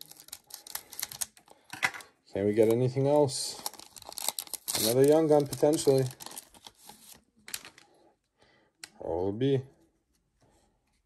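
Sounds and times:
foil wrapper rustling: 0.0 - 1.4, 3.5 - 7.8.

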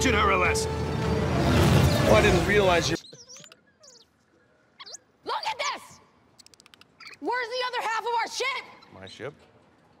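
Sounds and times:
creatures' squeaky chirps: 2.8 - 5.5, 6.4 - 7.5.

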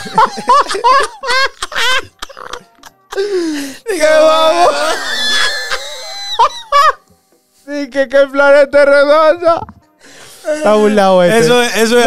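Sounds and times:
man's squealing laugh: 0.0 - 2.9, 4.0 - 7.0.

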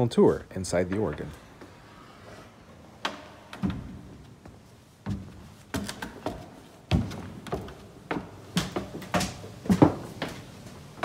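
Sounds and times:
footsteps on wooden steps: 3.0 - 11.0.

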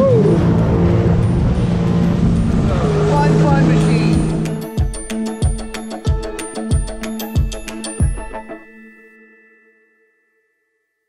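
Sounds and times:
music chord ringing: 0.2 - 10.8.

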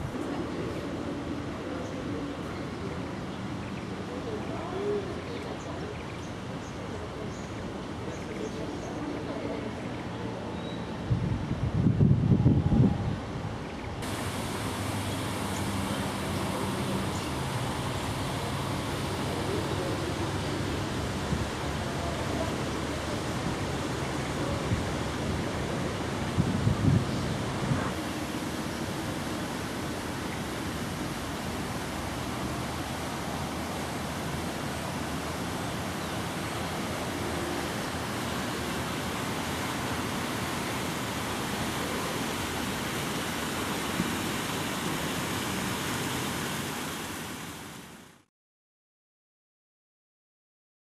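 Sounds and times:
outdoor hiss and low rumble: 0.0 - 48.2.

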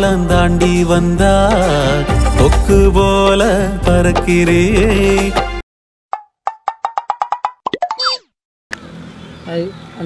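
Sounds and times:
outdoor background noise: 8.7 - 10.0.

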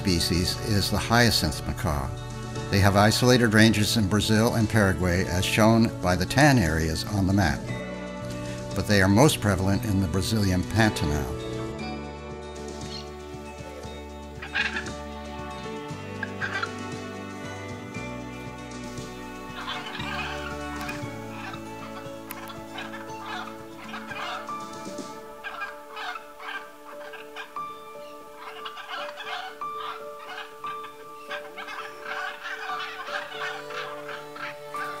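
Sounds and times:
background music held chords: 0.0 - 35.0
macaws rapid calls: 12.8 - 17.6, 18.9 - 35.0.

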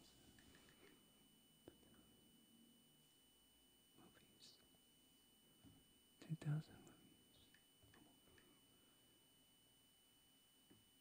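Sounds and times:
faint electrical whine: 0.0 - 11.0
soft murmured voice: 4.0 - 4.7, 6.2 - 8.6.

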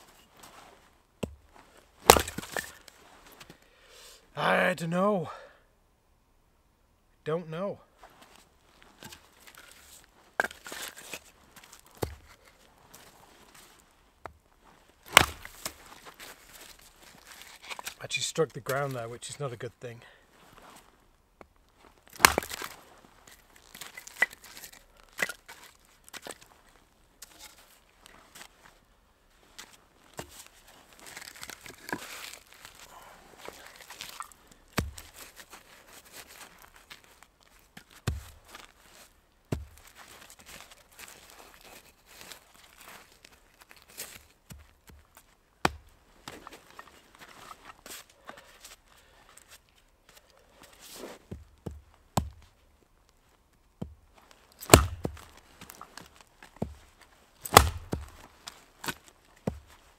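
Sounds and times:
axe striking wood: 1.2 - 1.4, 2.0 - 2.8, 12.0 - 12.4, 15.1 - 15.8, 22.2 - 22.8, 34.7 - 35.1, 45.6 - 45.9, 54.6 - 55.4, 57.4 - 58.2
split wood knocking: 2.1 - 2.6, 15.2 - 15.5, 22.2 - 22.6, 34.8 - 35.1, 54.7 - 55.3, 57.5 - 58.1.

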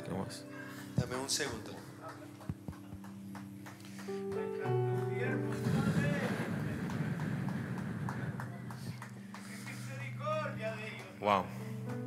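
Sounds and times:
soft keyboard chords: 0.0 - 12.0.

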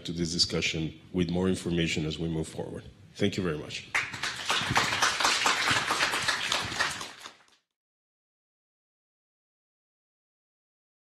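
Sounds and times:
audience applauding: 3.9 - 7.6.

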